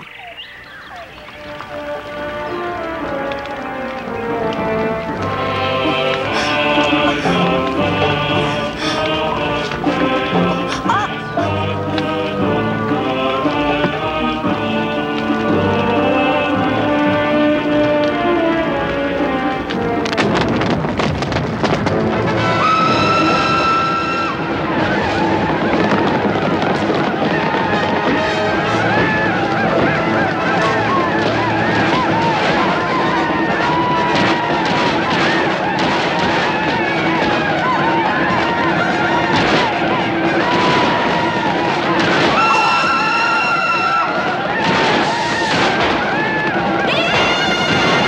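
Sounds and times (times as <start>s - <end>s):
people shouting: 2.5s - 19.6s, 22.4s - 48.0s
steam locomotive hissing: 5.4s - 12.9s
steam locomotive whistle: 22.4s - 25.2s.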